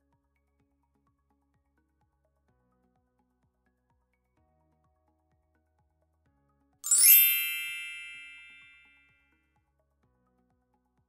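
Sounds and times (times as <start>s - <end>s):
bright chime-like ding: 6.9s - 9.0s.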